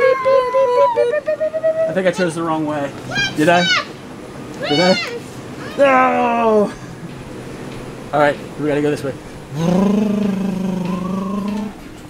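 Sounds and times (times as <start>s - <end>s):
person holding a long vocal note: 9.5s - 11.8s.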